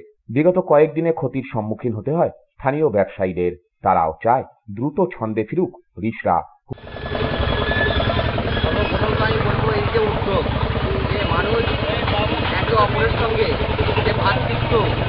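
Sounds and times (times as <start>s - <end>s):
narrator speaking: 0.0s - 6.6s, 8.7s - 15.0s
vehicle engine running: 6.8s - 15.0s.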